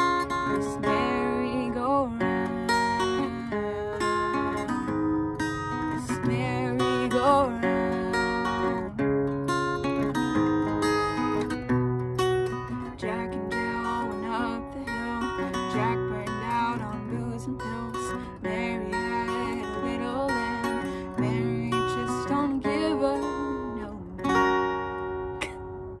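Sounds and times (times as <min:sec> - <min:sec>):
acoustic guitar chords: 0:00.0 - 0:26.0.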